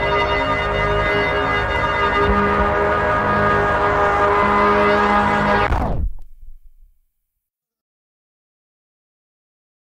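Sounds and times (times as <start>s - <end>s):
low bass tail: 1.9s - 7.0s.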